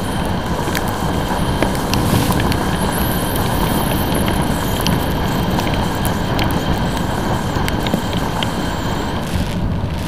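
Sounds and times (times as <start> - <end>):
tyre noise on wet road: 0.0 - 10.0
wind rush: 0.5 - 5.9
motorcycle engine: 1.2 - 5.8
light ticks: 5.6 - 8.6.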